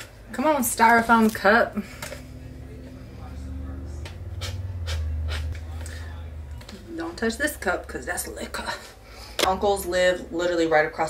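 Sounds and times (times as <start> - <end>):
low steady hum: 0.0 - 10.8
plastic straw wrapper rustling: 0.8 - 2.2.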